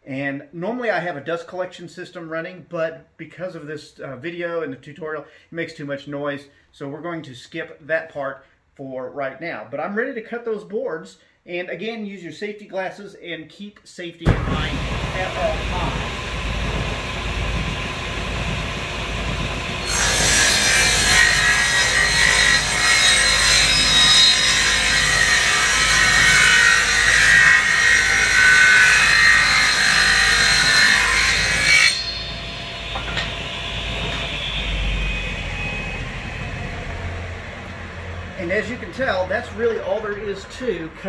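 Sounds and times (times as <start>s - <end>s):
table saw cutting wood: 14.3s - 40.9s.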